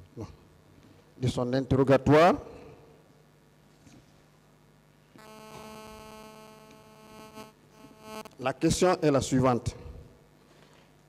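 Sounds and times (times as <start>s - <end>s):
electrical buzz: 4.8s - 8.8s.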